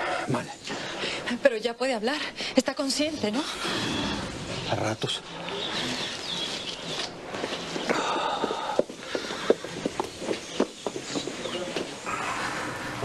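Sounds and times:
faint ambient background: 0:00.0 - 0:13.0
light irregular footsteps: 0:05.4 - 0:12.2.

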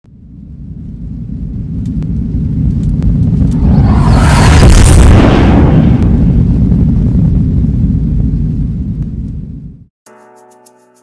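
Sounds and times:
deep low rumble of boom: 0:00.1 - 0:09.9.

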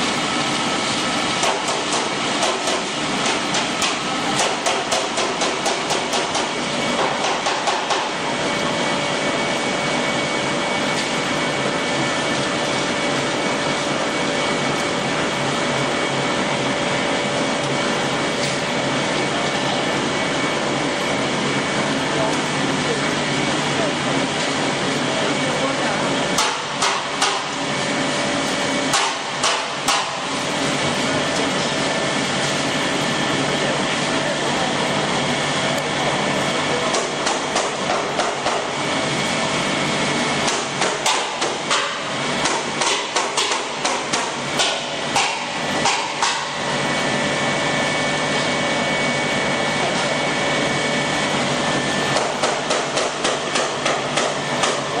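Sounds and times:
steady machinery noise: 0:00.0 - 0:55.0.

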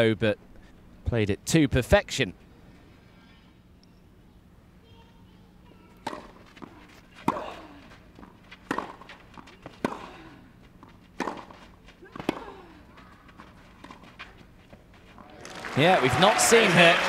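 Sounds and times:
tennis racquet striking ball: 0:06.0 - 0:10.2, 0:10.8 - 0:12.6.

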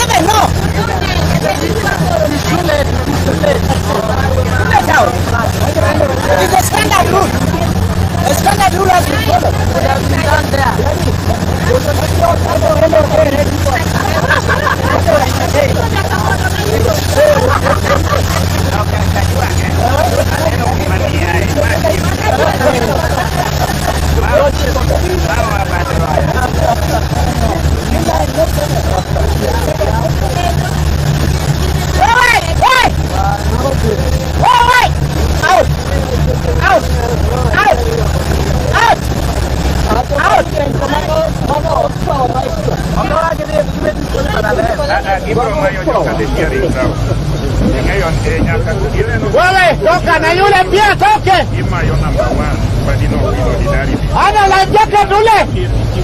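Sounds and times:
crowd shouting and calling: 0:00.0 - 0:56.0
motorboat engine running: 0:00.0 - 0:56.0.

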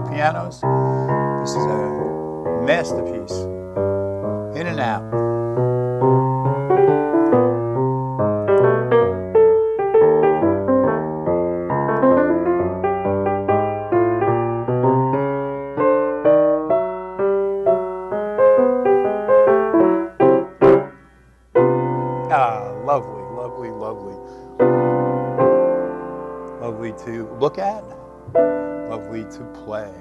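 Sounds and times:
grand piano playing: 0:00.0 - 0:30.0.

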